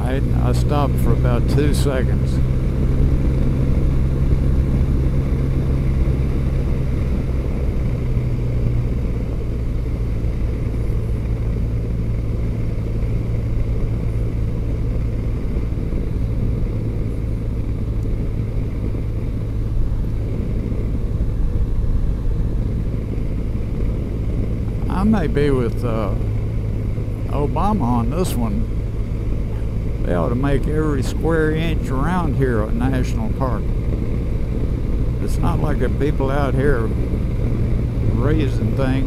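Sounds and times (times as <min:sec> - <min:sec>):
motorcycle engine running: 0:00.0 - 0:39.0
road and wind noise: 0:00.0 - 0:39.0.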